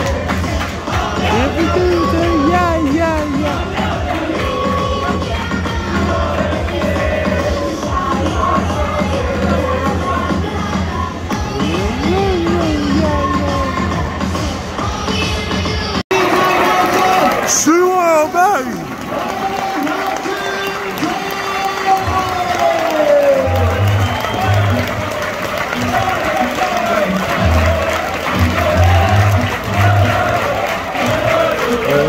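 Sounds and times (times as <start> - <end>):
crowd noise: 0.0 - 32.0
loud music over loudspeakers: 0.0 - 32.0.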